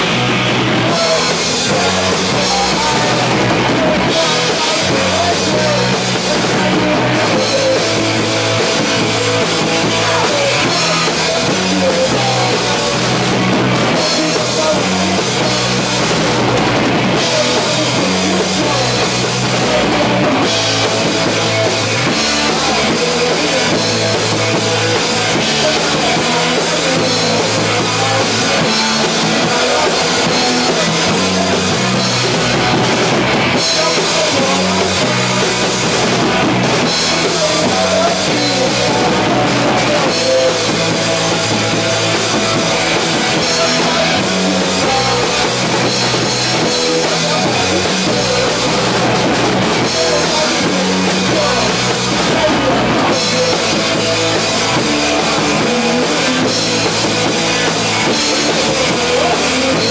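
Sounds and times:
drum kit with cymbals: 0.0 - 59.9
electric guitar: 0.0 - 59.9
punk rock band playing: 0.0 - 59.9.

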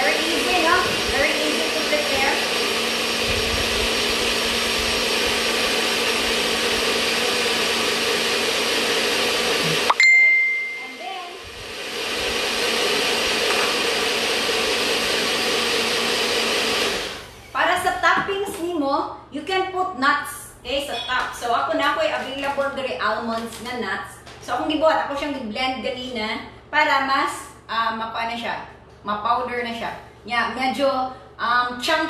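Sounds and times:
blender running: 0.0 - 10.0, 10.8 - 17.9
brief ringing tone: 9.9 - 11.0.

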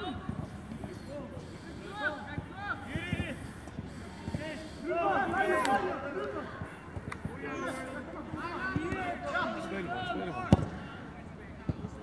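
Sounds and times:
players calling: 0.0 - 11.1.

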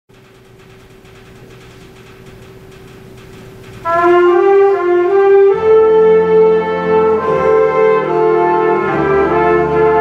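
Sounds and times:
hall noise: 0.1 - 10.0
jazz horn section chord: 3.8 - 10.0.

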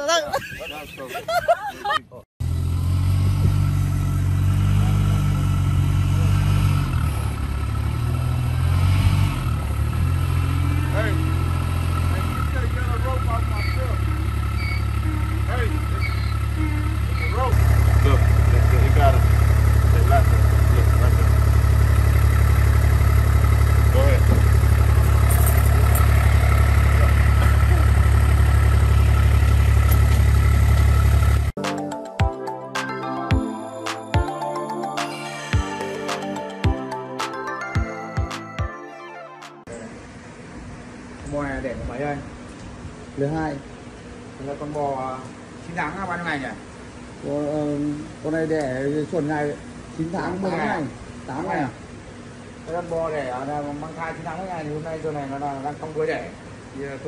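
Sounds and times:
utility vehicle engine running: 2.4 - 31.6.

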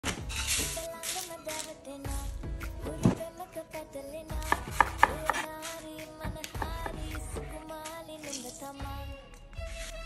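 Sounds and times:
knife chopping on wooden board: 4.4 - 5.5.

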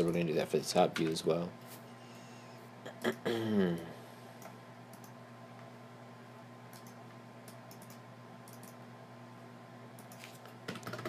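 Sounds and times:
faint steady hum: 0.0 - 11.0
computer keyboard keystrokes: 6.7 - 8.8, 10.0 - 11.0.

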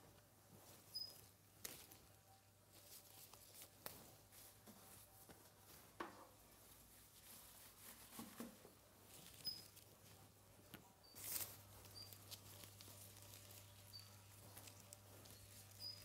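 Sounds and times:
caged bird peeping: 0.9 - 1.3, 9.1 - 9.9, 10.9 - 16.0.

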